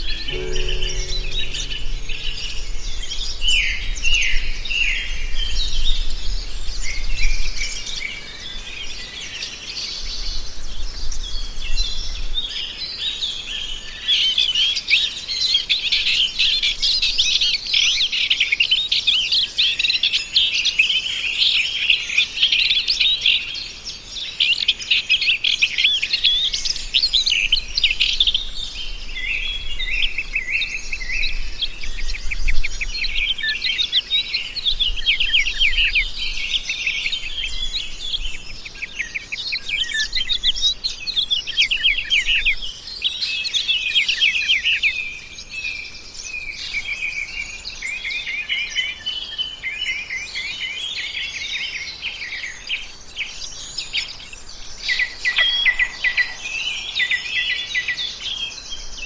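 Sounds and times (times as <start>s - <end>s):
songbirds chirping: 0.0s - 15.6s, 18.4s - 59.0s.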